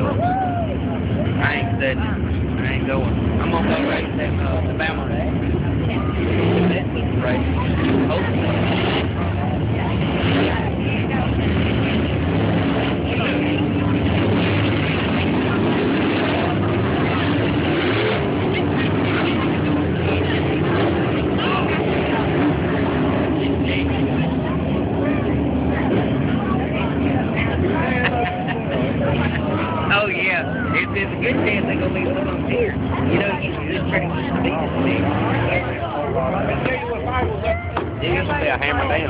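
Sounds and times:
race car engines droning: 0.0 - 39.0.

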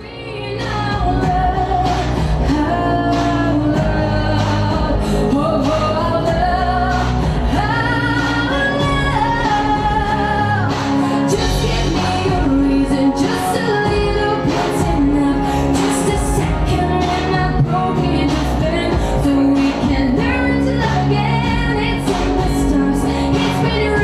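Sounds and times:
amplified backing music with bass: 0.0 - 24.0
woman singing into microphone: 0.0 - 24.0.

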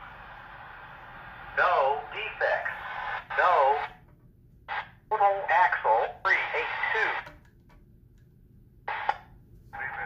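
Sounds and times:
radio hiss: 0.0 - 4.0, 4.7 - 7.3, 8.9 - 10.0
steady radio tone: 0.0 - 4.0, 4.7 - 7.4, 8.9 - 10.0
synthesized voice over radio: 1.6 - 4.0, 4.8 - 7.3, 9.8 - 10.0
radio blip: 8.9 - 10.0.

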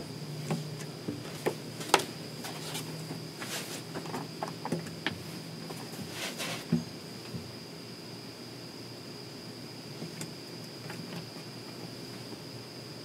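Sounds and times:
steady high-pitched whine: 0.0 - 13.0
guitar handling knocks and rustles: 0.4 - 7.5.

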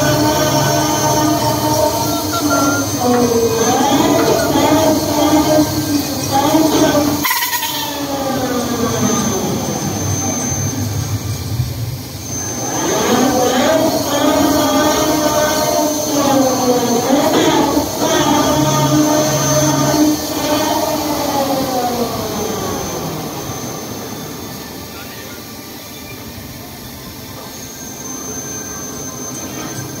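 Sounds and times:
ride machinery whining: 0.0 - 30.0
thin steady high tone: 0.0 - 30.0.

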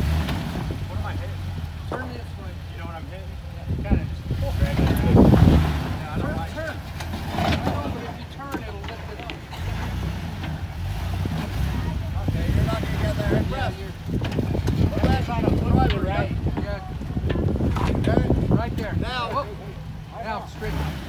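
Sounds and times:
engine rumbling at low revs: 0.0 - 21.0.

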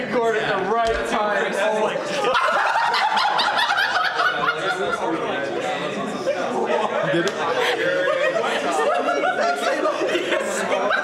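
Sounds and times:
people laughing and snickering: 2.0 - 11.0.

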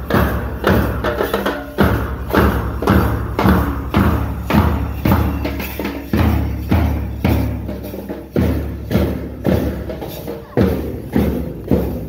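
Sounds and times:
marching bass drum booms: 0.0 - 12.0.

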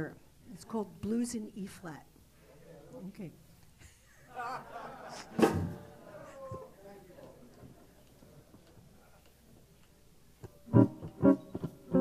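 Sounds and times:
jazz guitar chords: 10.6 - 12.0.

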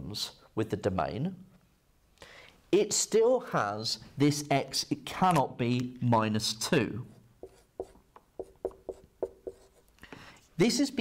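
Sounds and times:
marker squeaking on whiteboard: 7.1 - 9.9.

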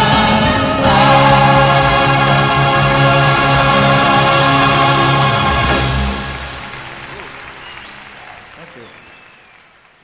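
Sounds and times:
live song: 0.0 - 9.5
audience applauding: 3.9 - 10.0.

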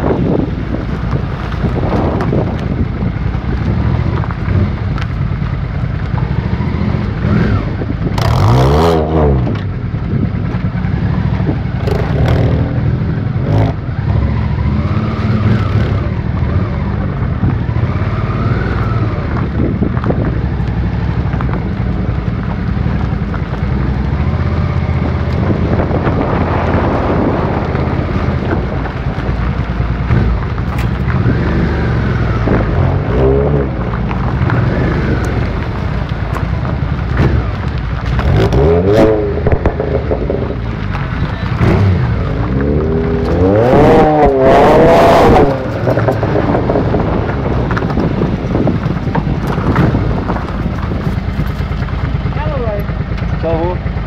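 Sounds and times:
car engine running at low speed: 0.0 - 54.0.

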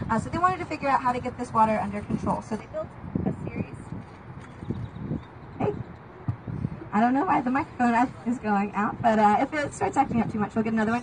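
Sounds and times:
woman speaking through microphone: 0.0 - 3.9, 5.6 - 5.9, 6.8 - 11.0.

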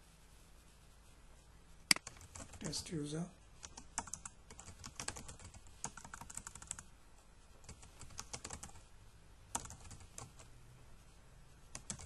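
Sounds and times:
typing on computer keyboard: 1.9 - 2.7, 3.6 - 6.9, 7.6 - 8.8, 9.5 - 10.5, 11.7 - 12.0.

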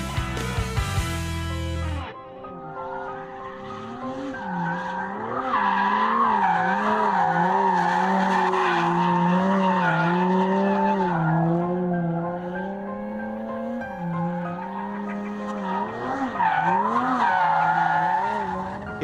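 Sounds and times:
tyres squealing on tarmac: 2.8 - 11.5, 14.6 - 19.0
car engine revving hard: 3.7 - 17.2.

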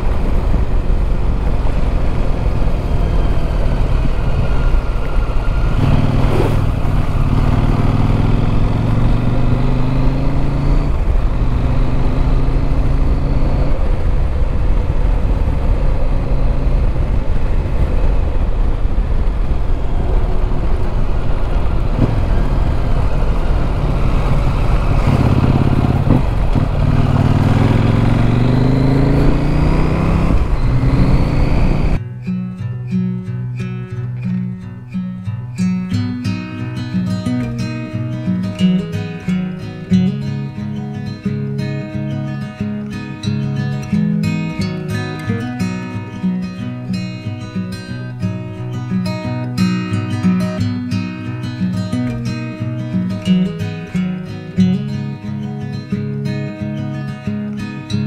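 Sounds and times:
motorcycle engine accelerating: 0.0 - 32.0
wind noise: 0.0 - 32.0
acoustic guitar music: 0.0 - 58.0.

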